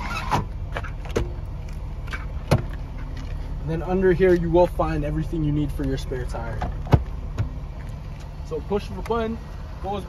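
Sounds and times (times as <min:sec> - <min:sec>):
steady low hum: 0:00.3 - 0:10.0.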